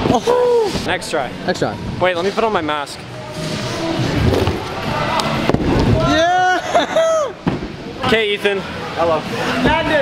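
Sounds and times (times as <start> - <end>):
people shouting: 4.8 - 7.4.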